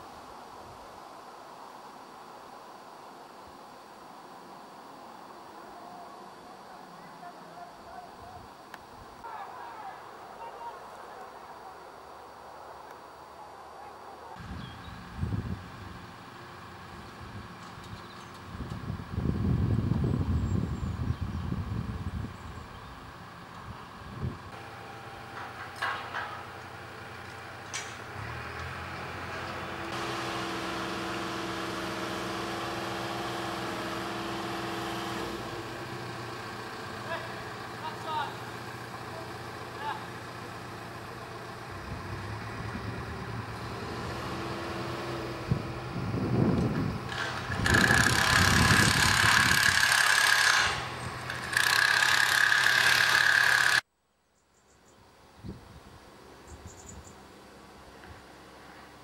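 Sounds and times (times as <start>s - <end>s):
engine hum: 14.0s - 53.9s
rough machinery noise: 22.9s - 53.9s.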